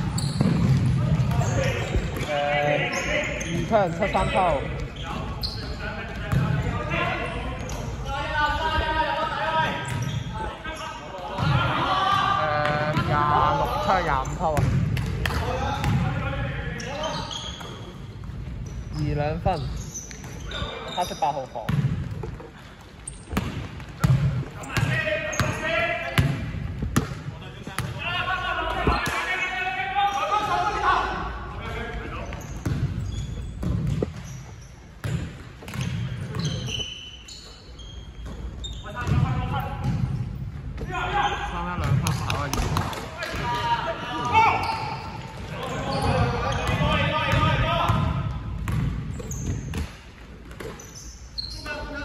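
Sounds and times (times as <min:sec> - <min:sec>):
basketball bouncing on wooden court: 0:00.0 - 0:02.3, 0:14.5 - 0:16.1, 0:21.7 - 0:22.6, 0:23.2 - 0:25.6, 0:26.2 - 0:27.2, 0:32.3 - 0:36.8, 0:38.2 - 0:40.2, 0:44.6 - 0:51.0.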